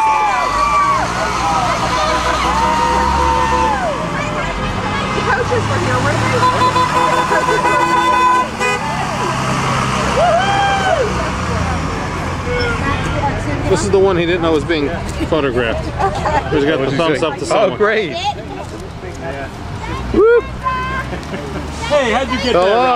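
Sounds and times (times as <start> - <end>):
people whooping and cheering: 0.0 - 4.2, 10.0 - 11.3, 20.0 - 21.2
bus engine driving past: 0.0 - 22.9
vehicle horn blast: 6.3 - 9.0.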